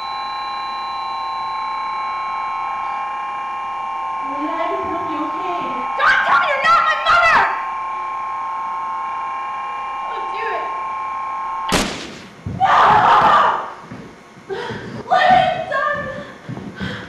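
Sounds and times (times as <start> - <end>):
droning hum of several tones: 0.0 - 17.0
loud scream-like cry: 5.3 - 7.8
sharp thump: 11.7 - 12.6
person speaking: 14.5 - 16.4.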